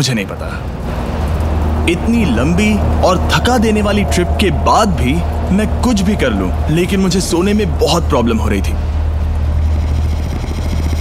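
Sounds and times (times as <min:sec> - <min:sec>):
low rumble: 0:00.6 - 0:11.0.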